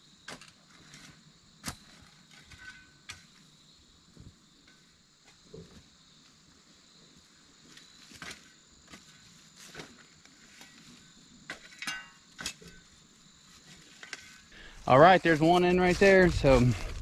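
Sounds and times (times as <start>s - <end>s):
insects chirring: 0.0s - 17.0s
faint scrapes and knocks: 0.3s - 3.4s, 13.5s - 14.6s.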